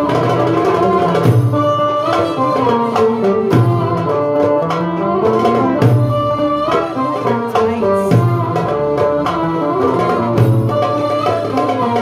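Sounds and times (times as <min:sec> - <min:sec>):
frame drum: 0:00.0 - 0:12.0
goblet drum rhythm: 0:00.0 - 0:12.0
oud melody: 0:00.0 - 0:12.0
violin melody: 0:00.0 - 0:12.0.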